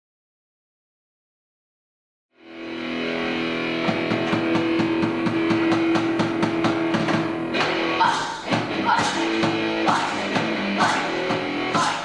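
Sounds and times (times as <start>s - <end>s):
electric guitar ringing chord: 2.4s - 8.0s
live rock band: 2.5s - 12.0s
steady beat: 3.6s - 12.0s.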